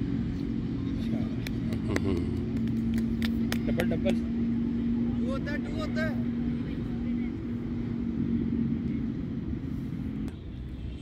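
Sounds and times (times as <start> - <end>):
voices: 0.2 - 11.0.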